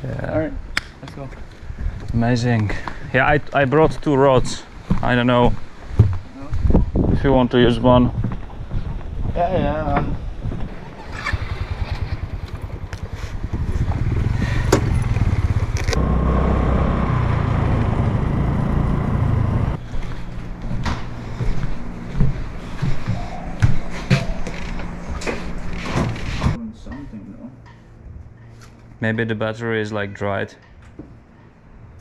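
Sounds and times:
motorcycle engine idling and revving: 9.6s - 26.6s.

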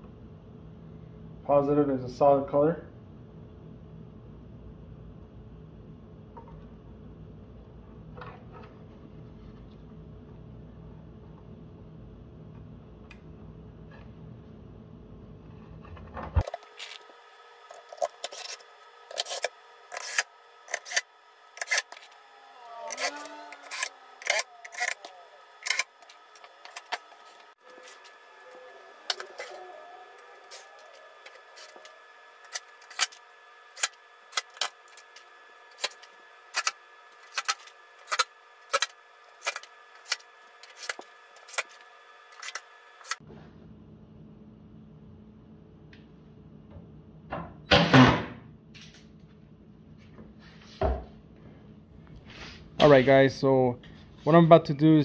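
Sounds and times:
steady low hum: 0.0s - 47.7s.

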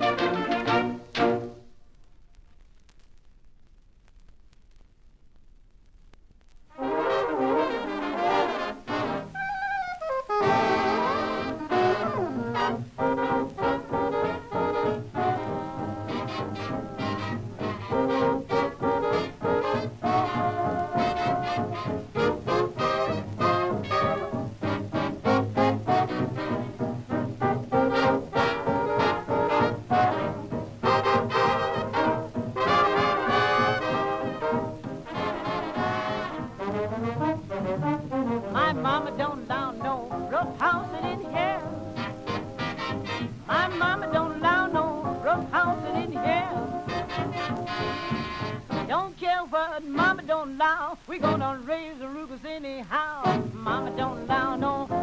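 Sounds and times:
trombone slides: 0.0s - 1.7s, 6.7s - 49.3s, 51.1s - 51.8s, 53.0s - 55.0s
old jazz band record: 0.0s - 55.0s.

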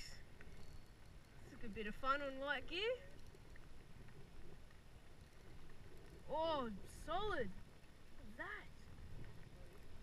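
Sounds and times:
rain falling on water: 0.0s - 10.0s.

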